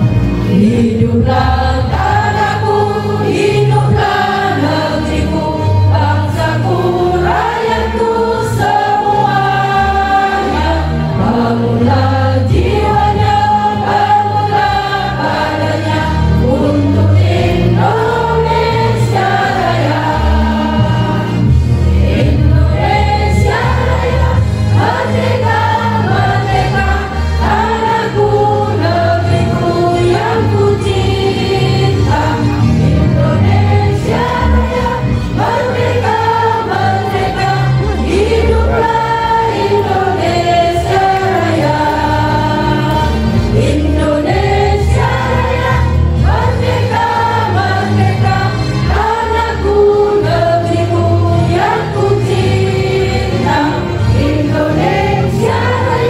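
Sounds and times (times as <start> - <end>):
women's choir singing amplified: 0.0 - 56.0.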